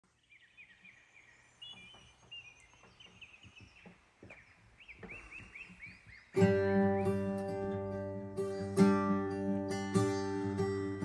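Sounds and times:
birds chirping and whistling: 0:00.2 - 0:10.6
faint knocks: 0:01.6 - 0:06.3.

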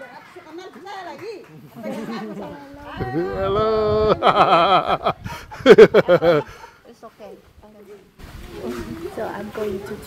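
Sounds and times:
low indistinct voices: 0:07.7 - 0:10.0.

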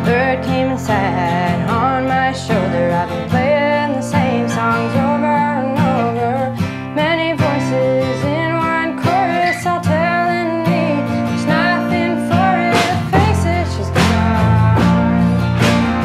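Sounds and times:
strummed guitar: 0:00.0 - 0:16.0.

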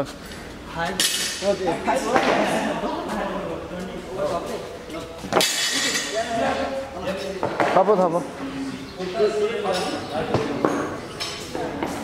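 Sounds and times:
people talking: 0:00.8 - 0:12.0.

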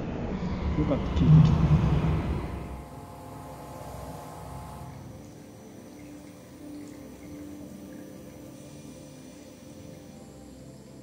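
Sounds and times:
low rumbling: 0:00.0 - 0:05.0
faint hum with held tones: 0:00.2 - 0:11.0.

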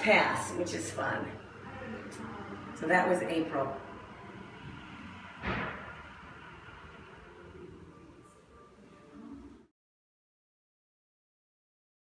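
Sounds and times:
faint room noise: 0:00.0 - 0:09.7.

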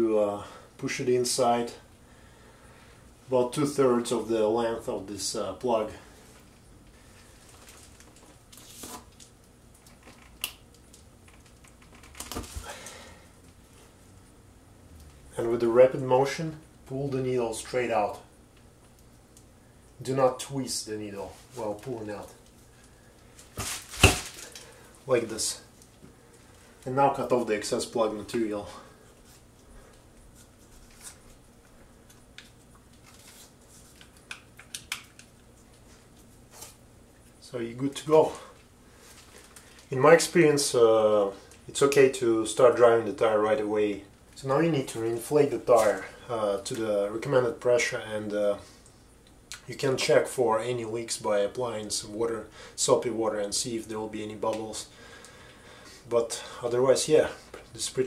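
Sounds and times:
soft clicks and rustles: 0:06.2 - 0:12.6.

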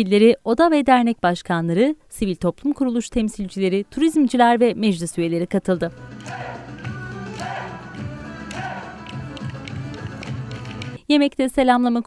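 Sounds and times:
live folk dance music: 0:05.9 - 0:11.0
sharp percussive taps: 0:06.2 - 0:11.0.

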